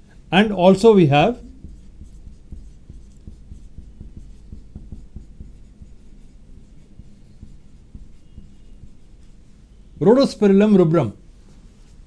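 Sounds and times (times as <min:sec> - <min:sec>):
marker pen writing on whiteboard: 0:00.1 - 0:10.4.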